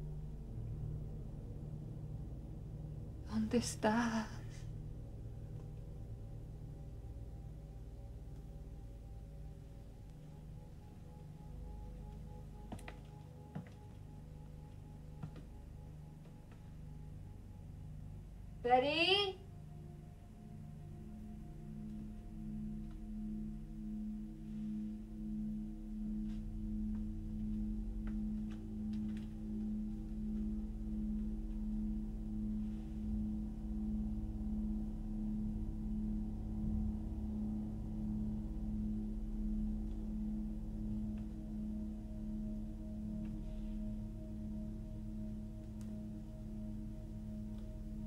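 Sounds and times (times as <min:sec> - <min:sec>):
low rumble: 0:00.0 - 0:12.7, 0:13.4 - 0:48.0
ominous low drone: 0:00.0 - 0:48.0.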